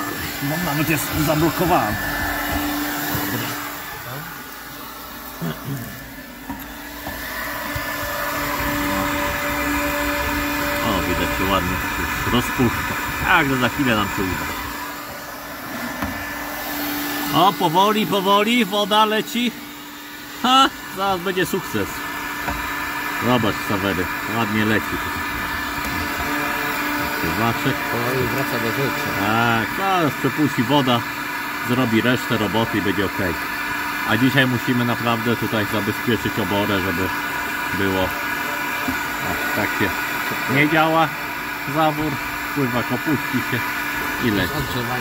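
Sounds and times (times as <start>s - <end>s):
heat gun blowing air: 0.0s - 45.0s.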